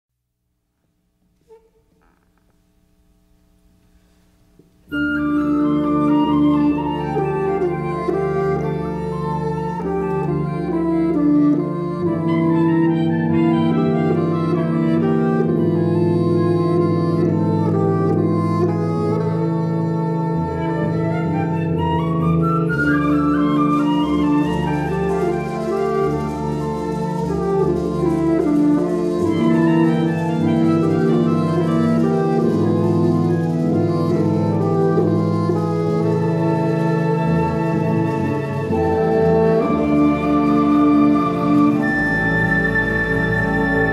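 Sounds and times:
wind ensemble playing: 4.9s - 43.9s.

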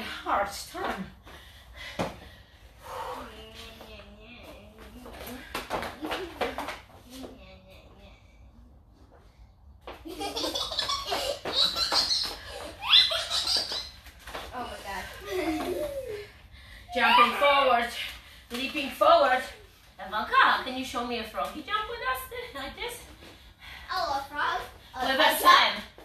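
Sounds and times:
people talking: 0.0s - 1.2s, 14.5s - 16.2s, 16.9s - 23.1s, 23.9s - 25.9s
people laughing: 15.2s - 16.2s.

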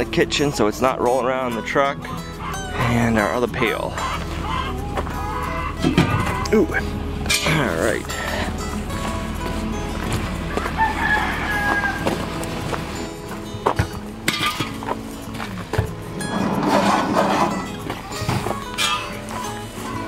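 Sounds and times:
footsteps on gravel: 3.9s - 16.6s, 17.5s - 20.0s
rooster crowing: 10.5s - 12.3s.

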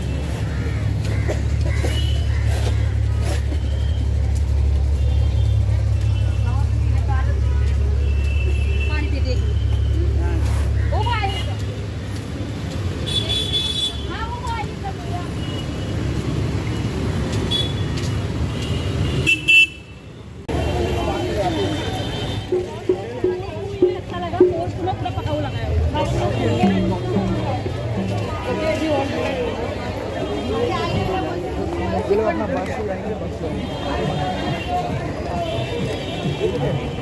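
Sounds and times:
bus engine rumbling: 0.0s - 13.0s, 20.4s - 37.0s
street traffic: 0.0s - 37.0s
voices of passers-by: 0.0s - 37.0s
vehicle horns honking: 1.8s - 2.5s, 7.7s - 10.2s, 13.0s - 14.3s, 17.4s - 23.0s, 24.8s - 31.4s, 33.2s - 37.0s.

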